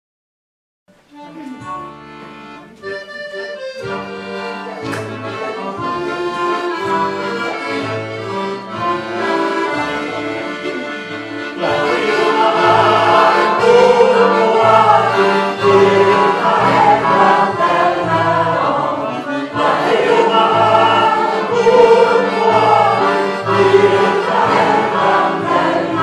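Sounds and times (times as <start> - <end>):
instrument accompanying: 1.0 - 26.0
congregation singing a hymn: 4.1 - 10.8, 11.4 - 26.0.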